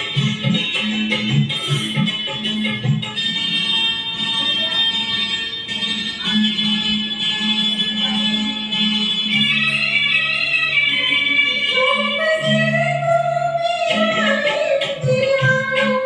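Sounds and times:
instrumental karaoke backing track: 0.0 - 16.0.

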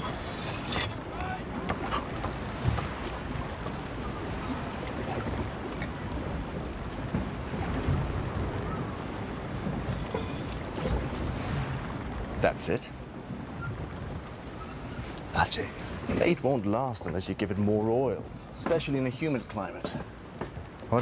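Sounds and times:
water washing against hull: 0.0 - 21.0
wind: 0.0 - 21.0
faint wooden knocks: 19.8 - 20.7.

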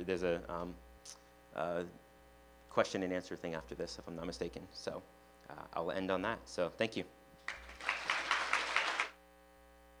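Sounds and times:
faint steady hum: 0.0 - 10.0
audience applauding: 7.4 - 9.2.

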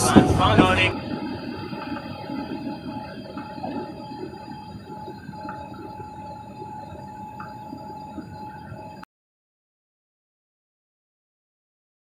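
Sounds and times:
faint whining tones: 0.0 - 9.1
jet engine drone: 0.0 - 9.1.

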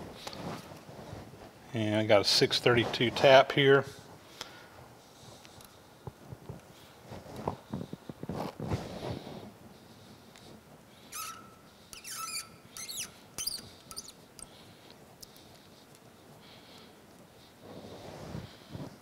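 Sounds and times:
tap squeaking: 11.1 - 14.5.

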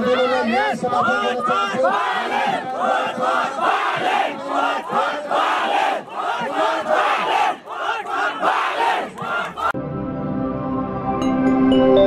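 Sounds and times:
man shouting into microphone: 0.0 - 3.2
crowd: 0.0 - 9.8
soft sustained outro music: 9.8 - 12.0.

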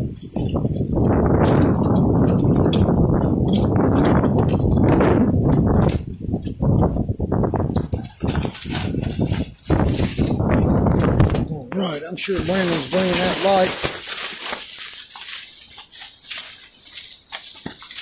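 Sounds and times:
wind buffeting microphone: 0.0 - 13.8.

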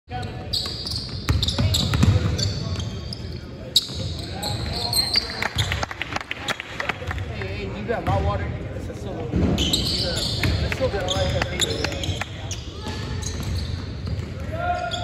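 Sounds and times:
sneakers squeaking: 0.1 - 5.8, 9.4 - 15.0
basketball bouncing on wooden floor: 1.3 - 2.3
people talking: 1.4 - 13.6.

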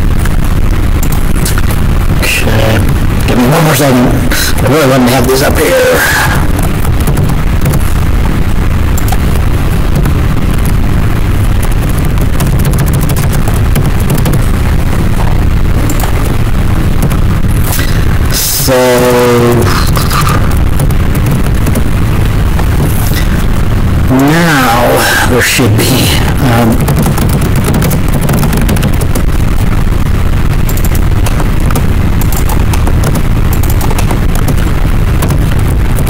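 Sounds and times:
microphone rumbling: 0.0 - 36.0
person's voice falling tone: 2.2 - 6.6, 17.7 - 20.7, 22.8 - 27.0.

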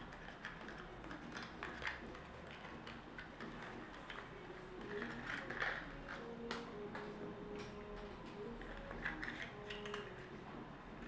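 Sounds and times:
clicks of handling small boxes: 0.1 - 10.3.

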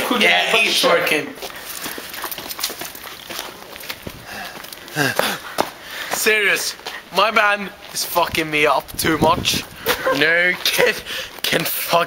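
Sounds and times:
clicks and scuffs: 1.4 - 7.0
man calling out: 6.2 - 12.0.

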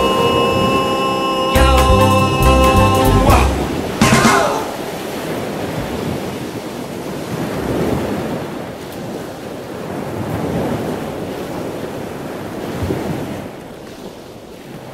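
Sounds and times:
ocean surf breaking on beach: 3.5 - 14.9.

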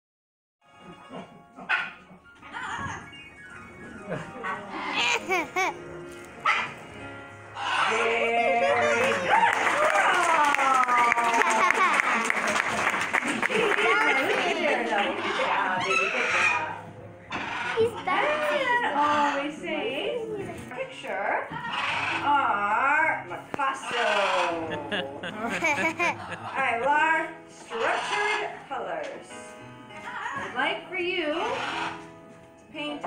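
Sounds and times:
background music: 0.6 - 33.0
parrot barking: 6.4 - 6.8, 7.6 - 8.0, 15.2 - 16.7, 17.3 - 18.5, 23.8 - 26.8
parrot whining call: 7.6 - 8.0
audience noise: 9.2 - 15.2.

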